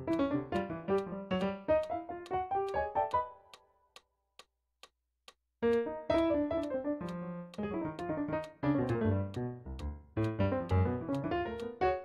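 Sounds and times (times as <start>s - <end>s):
metronome clicks: 0.0s - 12.0s.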